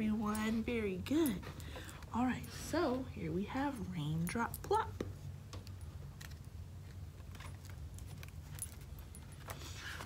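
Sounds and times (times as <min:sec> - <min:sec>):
low room hum: 0:00.0 - 0:10.0
book pages turning: 0:06.1 - 0:08.8.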